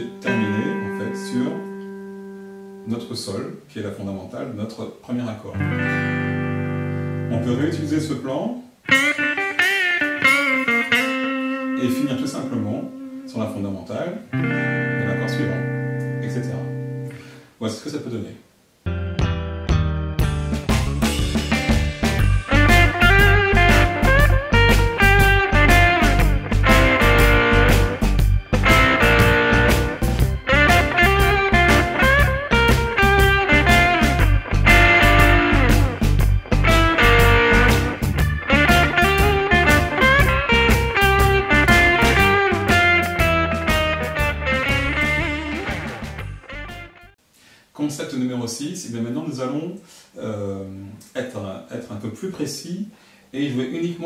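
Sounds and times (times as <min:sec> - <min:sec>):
electric guitar blues solo: 0:00.0 - 0:02.9, 0:05.5 - 0:07.9, 0:08.8 - 0:13.4, 0:14.2 - 0:17.4, 0:21.6 - 0:47.1
bass: 0:18.8 - 0:47.2
drum beat: 0:20.2 - 0:46.3.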